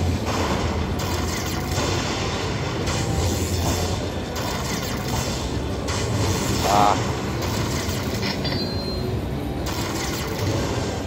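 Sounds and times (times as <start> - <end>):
slot machine tally sound: 1.0 - 11.0.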